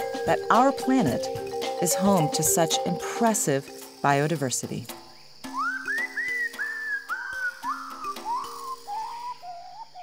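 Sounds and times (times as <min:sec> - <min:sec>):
whistled notes stepping down: 0:05.5 - 0:10.0.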